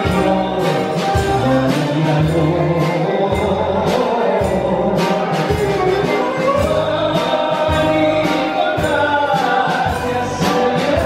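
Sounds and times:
bouzouki: 0:00.0 - 0:11.0
drums: 0:00.0 - 0:11.0
guitar: 0:00.0 - 0:11.0
keyboard: 0:00.0 - 0:11.0.

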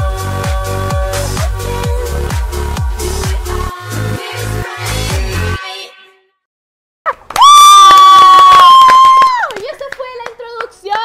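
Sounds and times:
woman cheering yell: 0:07.4 - 0:09.8
hand claps: 0:08.1 - 0:11.0.

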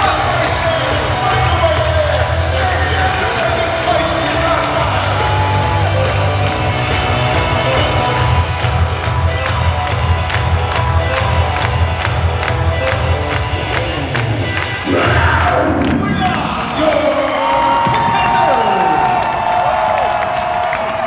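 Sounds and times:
music with heavy bass beat: 0:00.0 - 0:16.8
crowd: 0:00.0 - 0:21.0.

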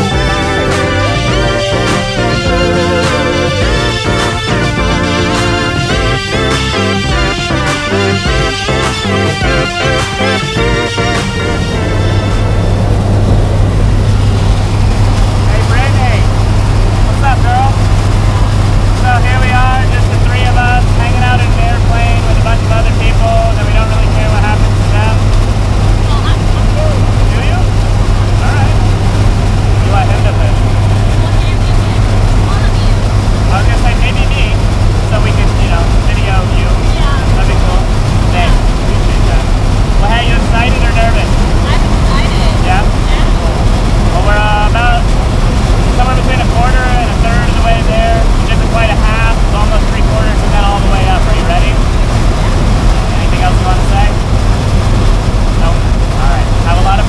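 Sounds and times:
plane engines droning: 0:00.0 - 0:57.0
faint voices: 0:25.9 - 0:45.2, 0:45.8 - 0:54.2.

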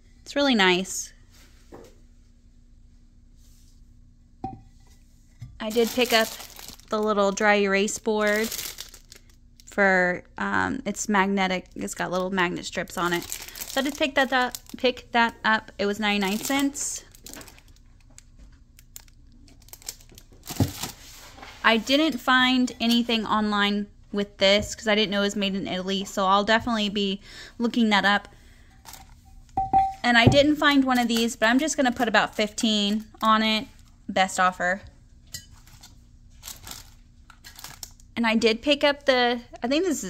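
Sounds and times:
plastic wrap crinkling: 0:05.6 - 0:09.7, 0:11.9 - 0:23.3, 0:30.6 - 0:34.1, 0:35.5 - 0:38.1.

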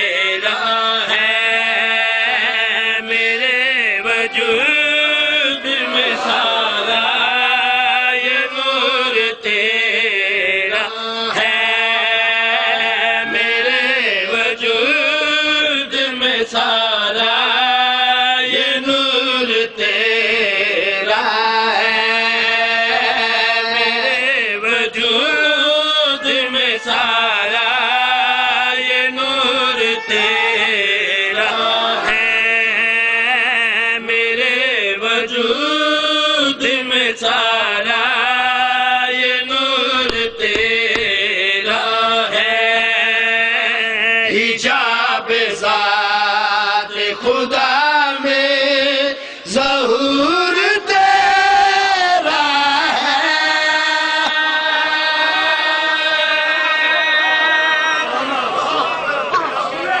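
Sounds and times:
men chanting together: 0:00.0 - 1:00.0.

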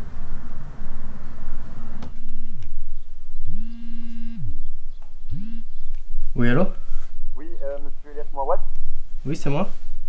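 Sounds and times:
steady noise: 0:00.0 - 0:10.0
smartphone vibrating: 0:03.5 - 0:04.6, 0:05.3 - 0:05.8.

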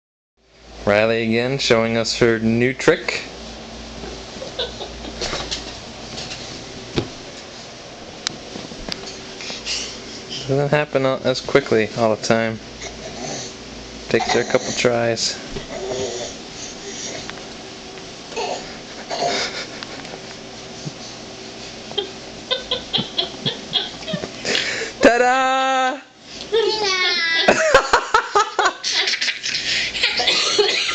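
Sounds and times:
room hum: 0:00.4 - 0:30.9
rustling and bumps on couch: 0:04.0 - 0:07.7, 0:08.3 - 0:09.6, 0:15.4 - 0:15.8
baby laughing and giggling: 0:22.0 - 0:24.3.

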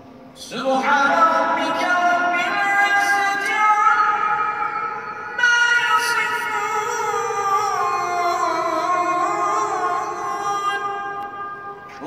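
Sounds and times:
person chanting with echo: 0:00.4 - 0:12.0.

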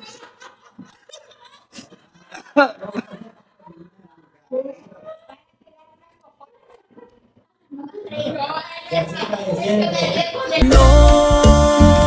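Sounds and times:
women laughing: 0:00.0 - 0:05.6.

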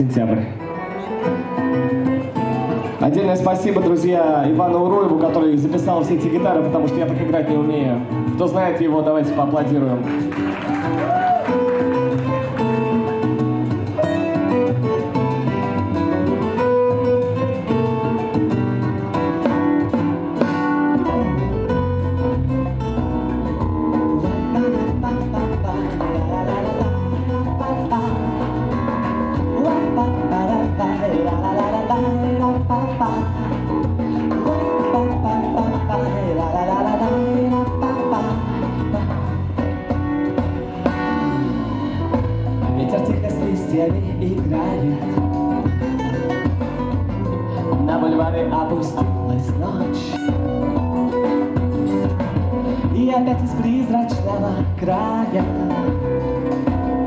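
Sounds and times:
backing track guitar parts: 0:00.0 - 0:57.0
live guitar music: 0:00.0 - 0:57.0
bass line: 0:01.6 - 0:57.0.

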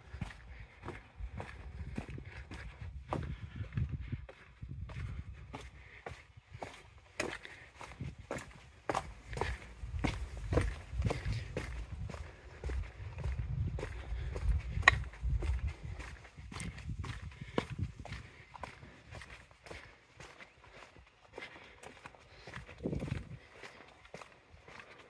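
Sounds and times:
footsteps on stone paving: 0:00.0 - 0:25.0.

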